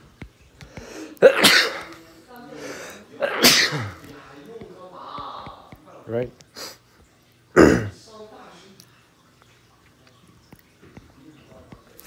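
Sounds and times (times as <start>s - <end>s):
person sneezing: 0.9s - 1.9s, 3.2s - 4.0s.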